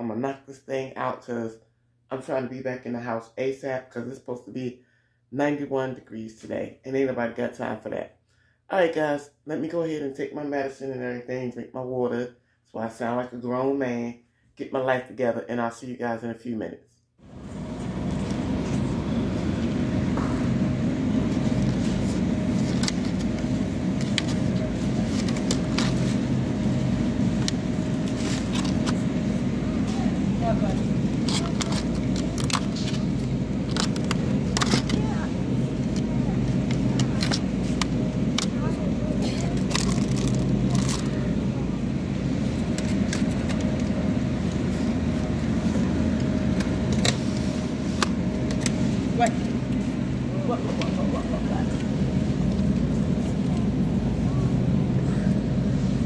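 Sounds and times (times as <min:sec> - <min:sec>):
steady low hum: 0:17.2 - 0:56.0
plastic packs clicking and crackling: 0:31.1 - 0:35.0, 0:39.2 - 0:41.2.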